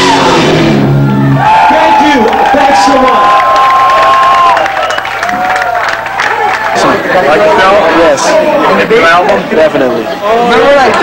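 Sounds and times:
audience cheering and whooping: 0:00.8 - 0:07.4.

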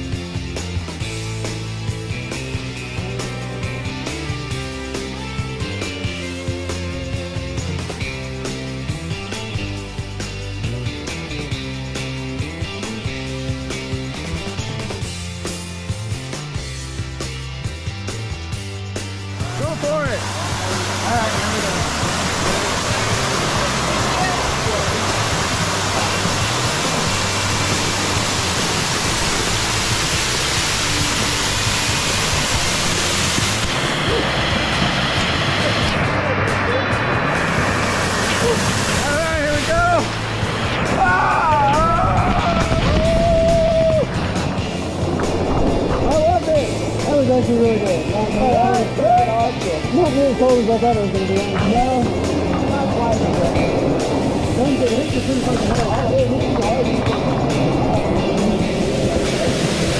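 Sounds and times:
background music with bass line: 0:00.0 - 0:59.9
voices: 0:19.4 - 0:25.2, 0:45.9 - 0:59.7
waterfall pouring into a pool: 0:19.4 - 0:45.4, 0:53.9 - 0:59.9.

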